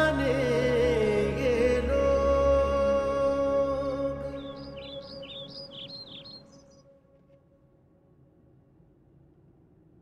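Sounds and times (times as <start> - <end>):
soft background music: 0.0 - 8.7
small birds chirping: 4.3 - 6.8.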